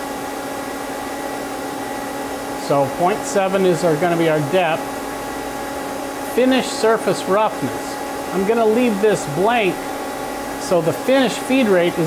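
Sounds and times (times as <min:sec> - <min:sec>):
lathe humming with fixed tones: 0:00.0 - 0:12.0
man speaking: 0:02.6 - 0:04.9, 0:06.3 - 0:09.8, 0:10.6 - 0:12.0.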